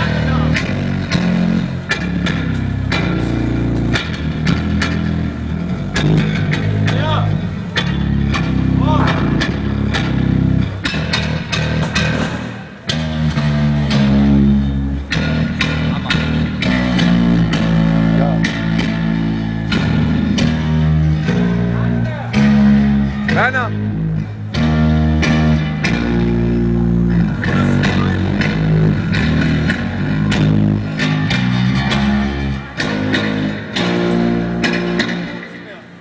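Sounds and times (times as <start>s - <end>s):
electric bass guitar notes: 0.0s - 36.0s
sharp hits: 7.8s - 12.6s.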